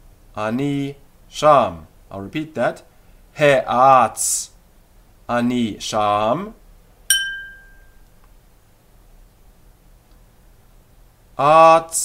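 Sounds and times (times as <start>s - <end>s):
small bell ding: 7.1s - 8.0s.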